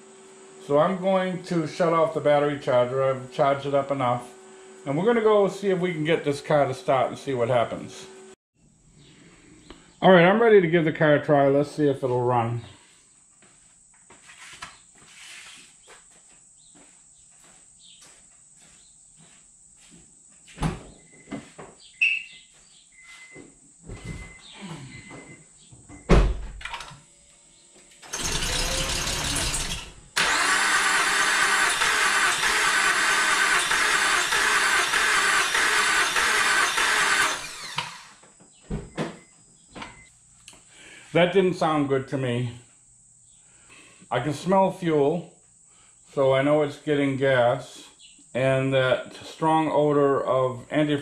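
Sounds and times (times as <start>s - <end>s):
car engine cranking: 28.1s - 38.1s.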